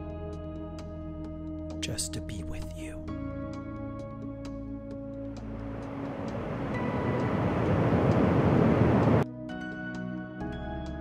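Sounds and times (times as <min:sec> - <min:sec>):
train rumbling inside carriage: 0:05.7 - 0:09.2.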